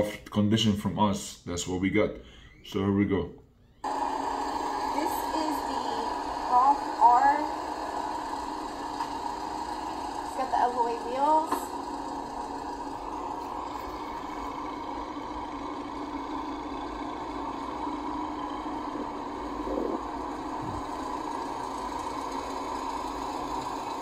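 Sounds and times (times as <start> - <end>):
steady mechanical hum: 0.0 - 24.0.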